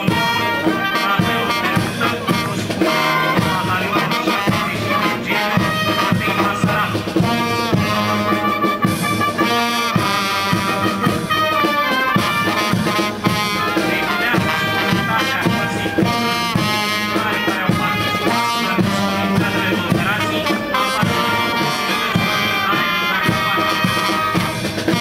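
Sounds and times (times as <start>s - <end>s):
brass band playing a march: 0.0s - 25.0s
drum beats: 0.0s - 25.0s.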